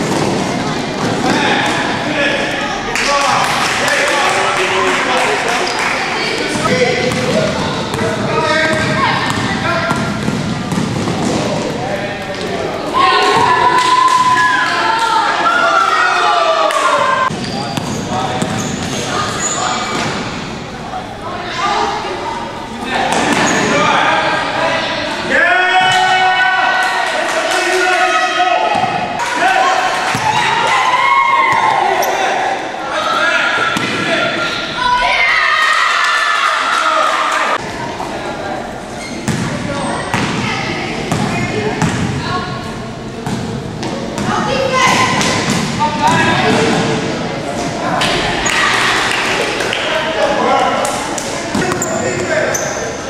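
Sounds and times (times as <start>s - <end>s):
people shouting and talking: 0.0s - 53.0s.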